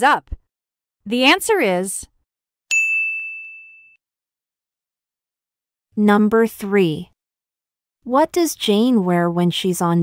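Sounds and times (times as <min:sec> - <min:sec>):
high bell-like ding: 0:02.7 - 0:04.0.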